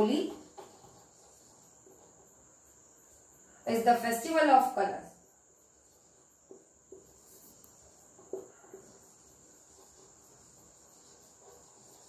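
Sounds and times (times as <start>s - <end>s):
marker writing on whiteboard: 0.0s - 3.6s, 5.6s - 12.0s
cricket trilling: 0.0s - 12.0s.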